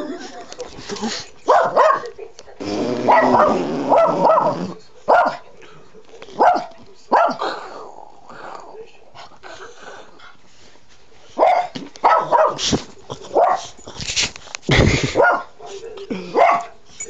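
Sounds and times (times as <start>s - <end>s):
small dog barking: 1.5s - 2.1s, 3.0s - 5.4s, 6.4s - 7.4s, 11.4s - 12.7s, 15.2s - 15.5s, 16.4s - 16.7s.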